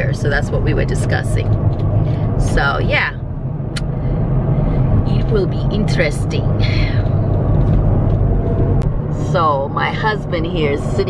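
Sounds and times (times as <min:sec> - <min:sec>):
engine and road noise inside car: 0:00.0 - 0:11.0.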